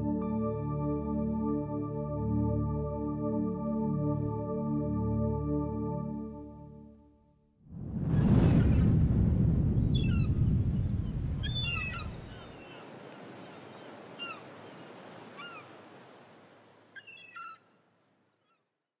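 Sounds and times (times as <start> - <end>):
wave surging and washing back: 7.7 - 17.0
birds calling: 11.4 - 15.8, 16.9 - 17.7.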